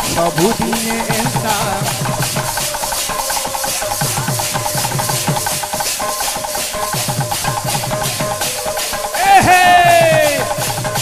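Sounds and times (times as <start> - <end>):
hand cymbals clashing: 0.0 - 11.0.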